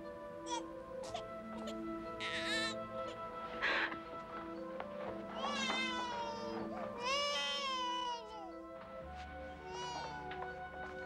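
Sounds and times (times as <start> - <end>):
soft music score: 0.0 - 11.0
high-pitched wailing cries: 0.4 - 3.3, 5.4 - 8.6, 9.6 - 10.3.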